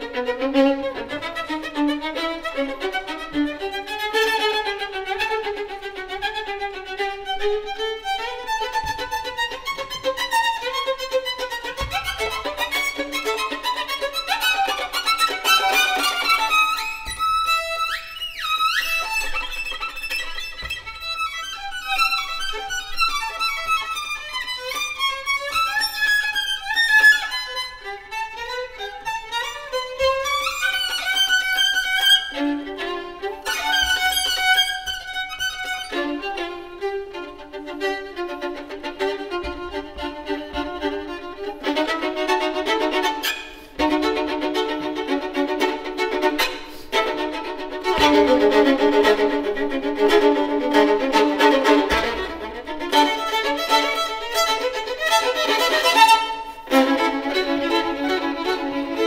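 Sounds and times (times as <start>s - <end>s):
fast fiddle playing: 0.0s - 59.0s.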